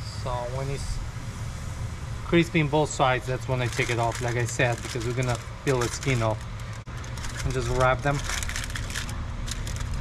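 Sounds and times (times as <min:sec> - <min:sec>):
aluminum foil crinkling: 0:03.4 - 0:10.0.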